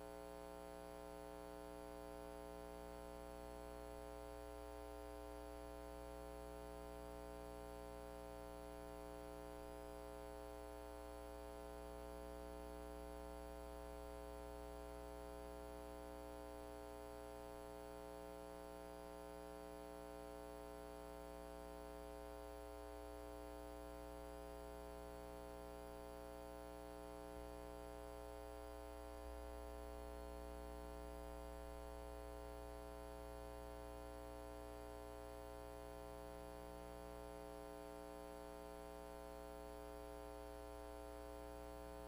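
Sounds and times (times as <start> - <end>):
faint mains hum: 0.0 - 42.0.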